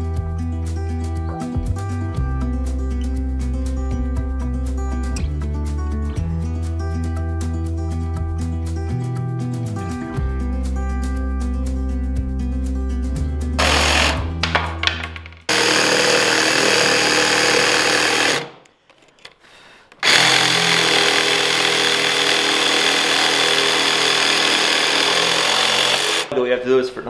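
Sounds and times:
background music: 0.0 - 18.4
jigsaw sawing through wood: 13.6 - 14.4, 15.5 - 18.6, 20.0 - 26.3.

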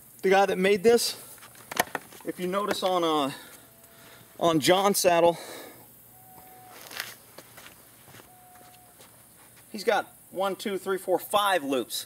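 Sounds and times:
camera gear clicks and knocks: 1.6 - 2.8
faint whistle-like note: 6.1 - 6.9.

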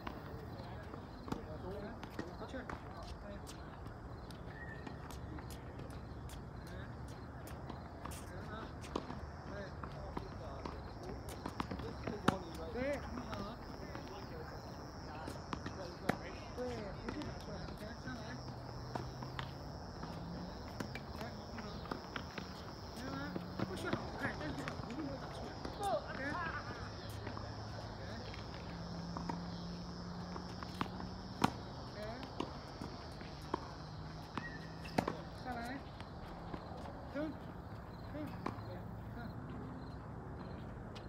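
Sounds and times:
footsteps on hard court: 0.0 - 41.0.

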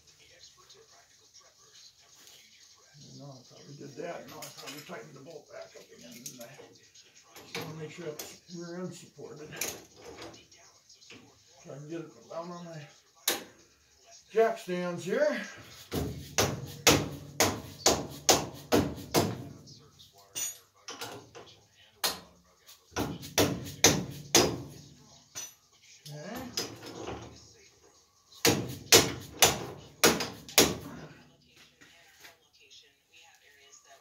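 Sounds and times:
hammer striking metal: 28.4 - 30.8.

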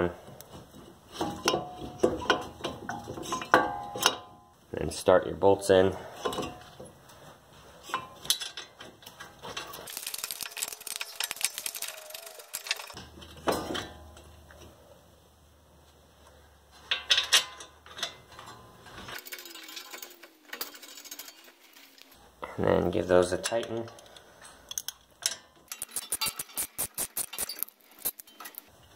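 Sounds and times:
metallic clicks and clinks: 7.9 - 14.3, 16.9 - 22.2, 23.3 - 28.9.

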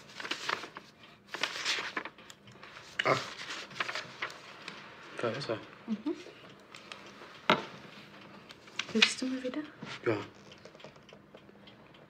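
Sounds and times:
paper sheets rustling: 0.0 - 4.8.

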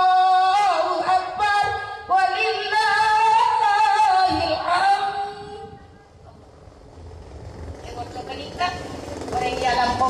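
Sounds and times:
low background rumble: 0.2 - 10.0
woman preaching through microphone: 7.8 - 10.0.

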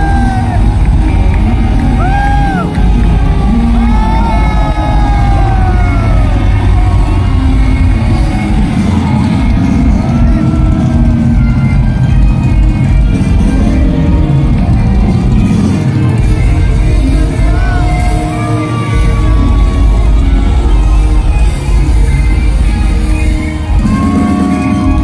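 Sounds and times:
crowd calling and cheering: 0.0 - 25.0
live rock band playing: 0.0 - 25.0.

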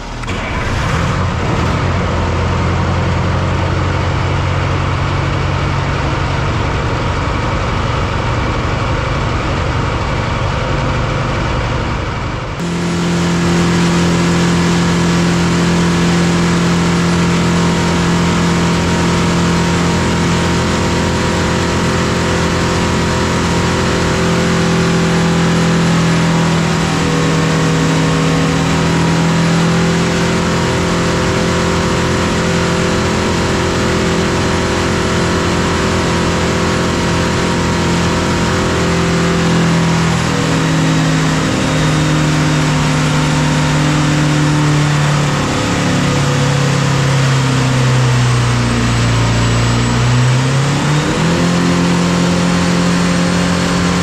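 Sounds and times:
diesel engine running under load: 0.0 - 54.0.

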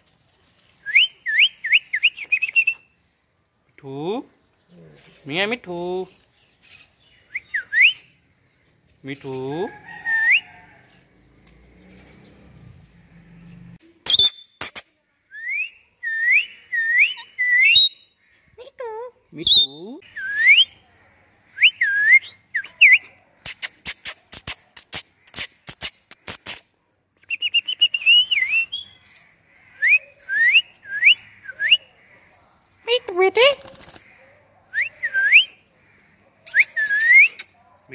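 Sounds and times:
parakeet chirping and whistling: 14.0 - 14.6.

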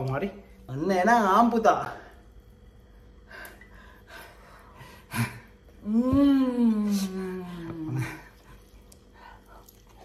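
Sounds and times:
person chewing food: 7.6 - 10.0.

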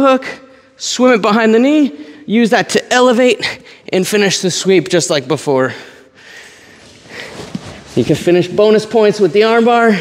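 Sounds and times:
person breathing: 5.6 - 8.0
cloth rustling: 6.4 - 10.0
bodies shifting on mat: 6.8 - 8.4.

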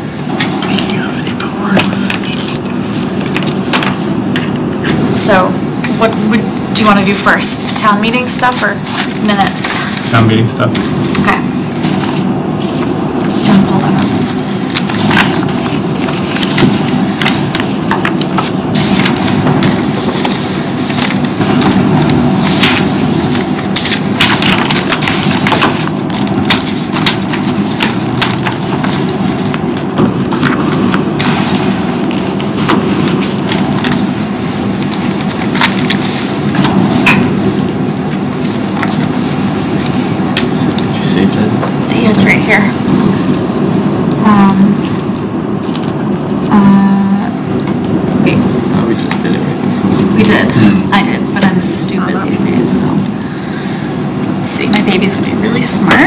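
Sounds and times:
low room rumble: 0.0 - 56.0
papers rustling and clicking: 10.6 - 34.2, 34.8 - 40.9, 44.8 - 46.5
low murmured talk: 48.2 - 53.0.

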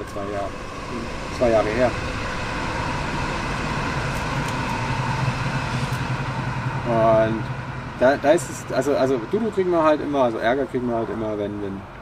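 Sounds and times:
low engine hum: 0.0 - 12.0
road traffic noise: 0.0 - 12.0.

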